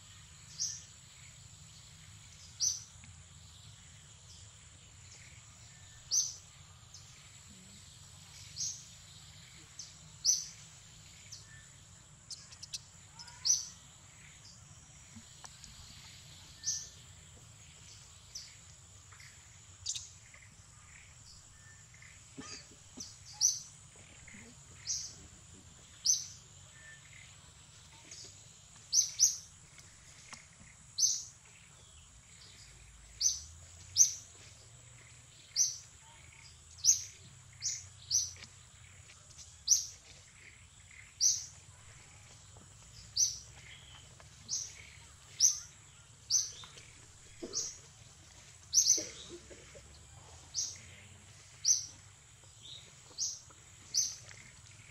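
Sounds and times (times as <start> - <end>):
bird chirping: 0.0 - 54.9.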